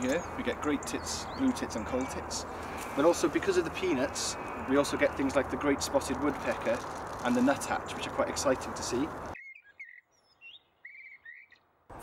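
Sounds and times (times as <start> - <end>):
small birds chirping: 0.0 - 11.8.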